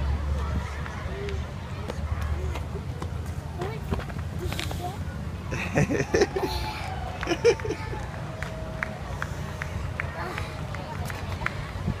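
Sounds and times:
low outdoor rumble: 0:00.0 - 0:12.0
person laughing: 0:05.5 - 0:08.0.

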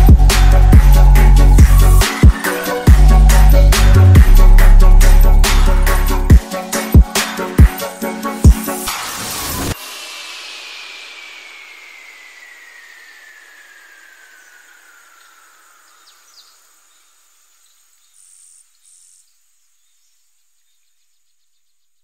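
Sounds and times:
hiss with falling tone: 0:08.0 - 0:19.3
faint high chirps: 0:09.8 - 0:22.0.

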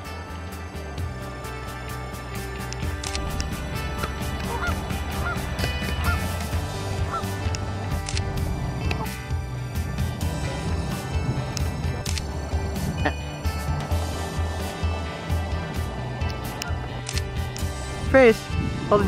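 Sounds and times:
background music with steady beat: 0:00.0 - 0:19.0
geese honking: 0:03.2 - 0:09.2.

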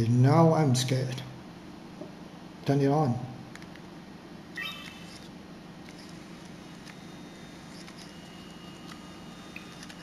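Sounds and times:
camera start-up beep: 0:04.6 - 0:05.3, 0:05.9 - 0:10.0.

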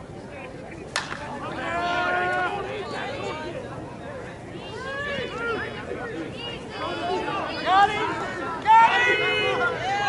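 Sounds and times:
bat cracking a ball: 0:00.9 - 0:01.3
voices shouting: 0:04.6 - 0:10.0.

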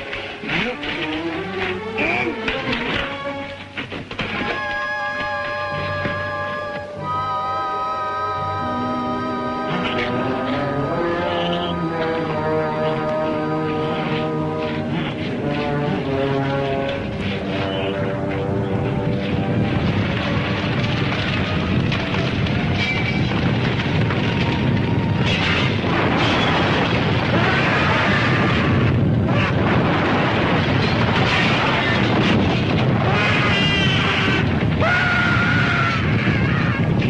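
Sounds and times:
held musical notes: 0:00.1 - 0:20.6
rumble of action sound effects: 0:09.0 - 0:37.0.

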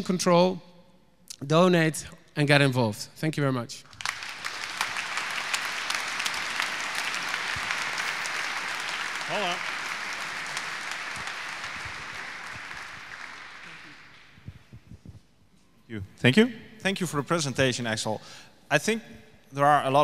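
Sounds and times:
audience applauding: 0:03.8 - 0:14.8.

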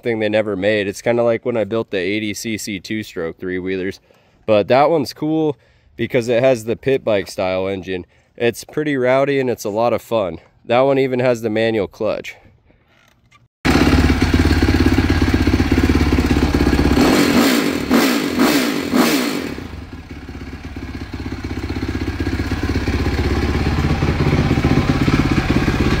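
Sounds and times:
atv engine revving: 0:13.7 - 0:26.0.

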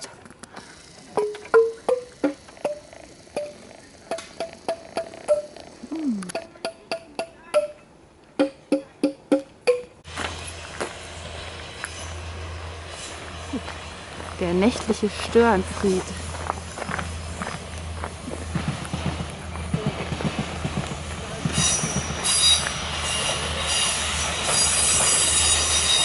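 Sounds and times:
passing diesel train hum: 0:00.0 - 0:08.3, 0:09.5 - 0:26.0
wooden xylophone notes: 0:01.2 - 0:02.8, 0:03.4 - 0:10.0.

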